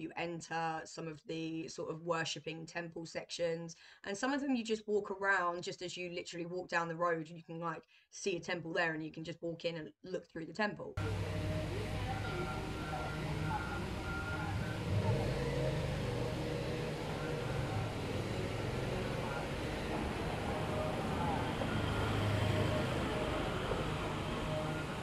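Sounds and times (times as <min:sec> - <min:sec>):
city traffic rumble: 0:11.0 - 0:25.0
distant indistinct voices: 0:11.0 - 0:25.0.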